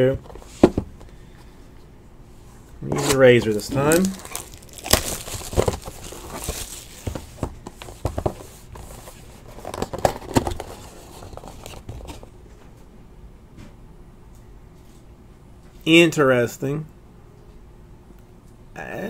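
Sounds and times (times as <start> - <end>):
plastic wrap crinkling and tearing: 3.0 - 7.4.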